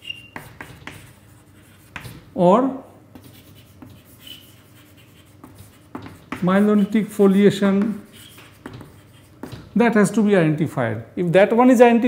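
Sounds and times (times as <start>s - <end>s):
chalk squeak: 0.0s - 2.2s, 3.3s - 9.6s
chalk scratching on blackboard: 0.0s - 2.3s, 3.1s - 9.8s.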